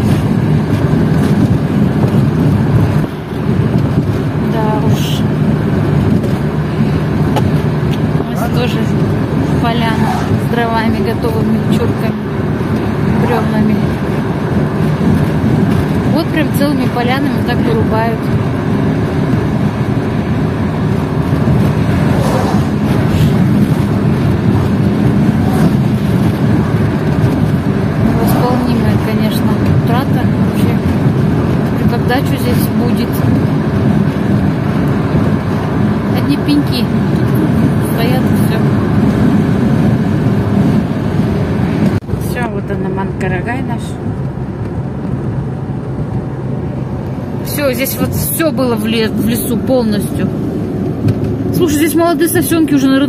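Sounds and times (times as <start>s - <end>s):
car road noise inside cabin: 0.0s - 53.0s.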